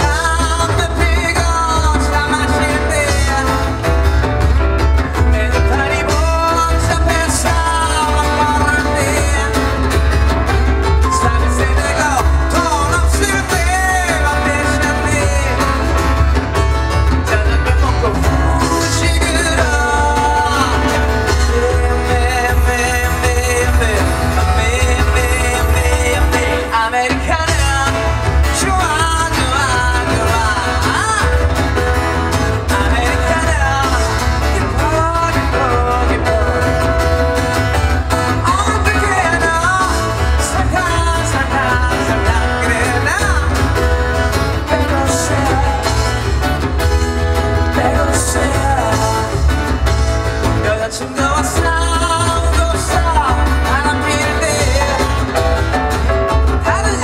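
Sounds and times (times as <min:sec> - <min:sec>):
keyboard: 0:00.0 - 0:57.0
percussion: 0:00.0 - 0:57.0
person singing lead vocal: 0:00.0 - 0:57.0
strummed acoustic guitars: 0:00.0 - 0:57.0.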